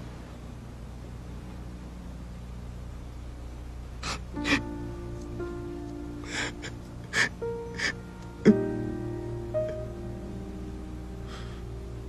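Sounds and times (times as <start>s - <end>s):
low steady hum: 0.0s - 12.0s
soft sustained music notes: 4.2s - 12.0s
person gasping: 6.2s - 8.6s, 11.3s - 11.7s.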